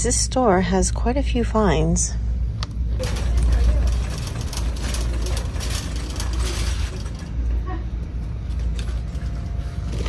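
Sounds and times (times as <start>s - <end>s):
steady low rumble: 0.0s - 10.0s
packaged cards rustling on rack: 3.0s - 7.6s.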